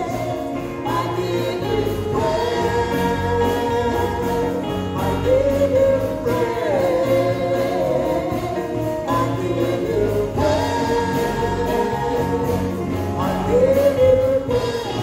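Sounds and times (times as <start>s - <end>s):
backing voices singing: 0.0s - 15.0s
man singing into a microphone: 0.0s - 15.0s
musical accompaniment: 0.0s - 15.0s.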